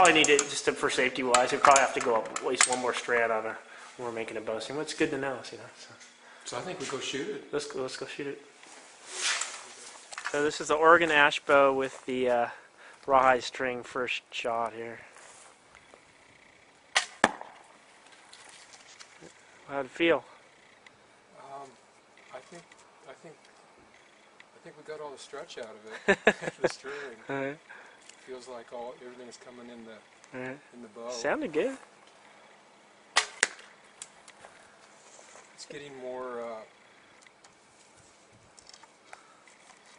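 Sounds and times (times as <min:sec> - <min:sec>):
arrow striking target: 0:16.9 - 0:17.7, 0:33.2 - 0:33.7
bowstring snapping: 0:33.2 - 0:34.4.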